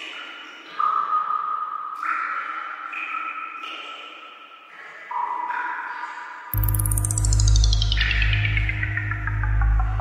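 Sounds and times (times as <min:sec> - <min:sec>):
held synthesizer tones: 0:06.6 - 0:10.0.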